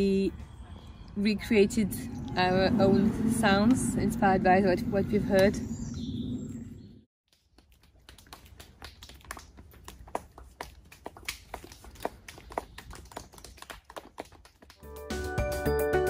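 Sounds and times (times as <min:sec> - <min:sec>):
soft hand claps: 0:07.6 - 0:14.8.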